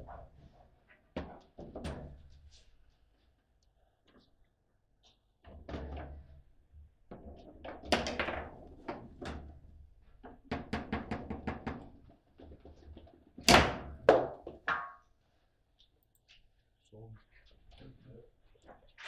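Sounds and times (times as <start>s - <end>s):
foosball ball and figures clacking: 7.1s - 9.5s.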